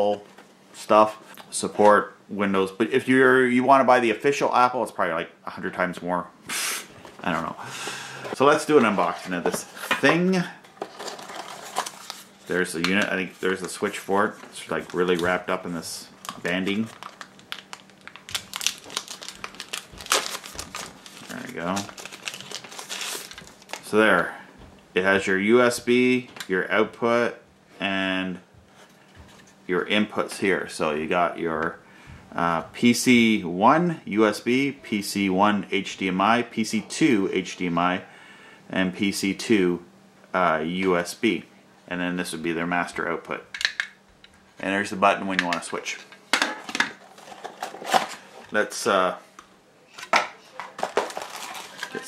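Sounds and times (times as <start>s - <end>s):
cardboard scraping and rustling: 10.7s - 12.4s
packing wrap crinkling: 10.8s - 24.0s, 46.9s - 48.6s, 50.0s - 52.0s.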